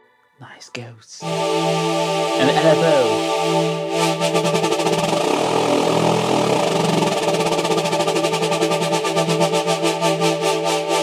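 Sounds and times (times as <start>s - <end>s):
synthesizer pad chord: 1.2s - 11.0s.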